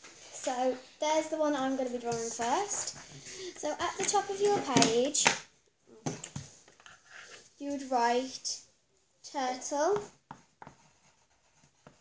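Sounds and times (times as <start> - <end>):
pencil scratching on paper: 10.0 - 12.0.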